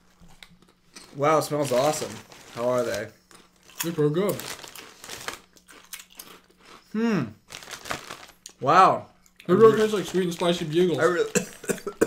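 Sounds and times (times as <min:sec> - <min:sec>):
crunchy snack being chewed: 0:00.3 - 0:06.9, 0:07.5 - 0:08.6.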